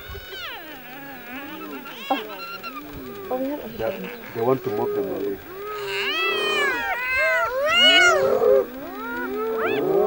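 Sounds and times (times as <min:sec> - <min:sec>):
hyenas wailing and squealing: 0:00.1 - 0:10.0.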